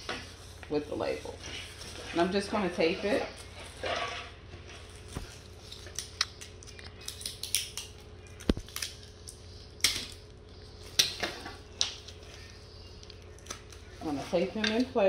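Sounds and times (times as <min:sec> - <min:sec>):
paper and plastic crinkling: 0:00.0 - 0:11.0.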